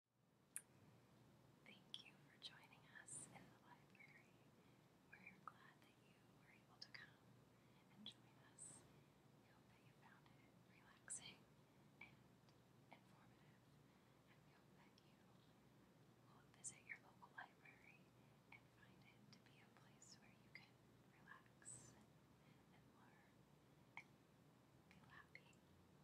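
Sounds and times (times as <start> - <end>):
woman whispering: 1.6 - 4.4, 5.1 - 8.8, 9.4 - 12.3, 12.9 - 13.6, 14.2 - 15.6, 16.3 - 23.4, 24.9 - 25.6.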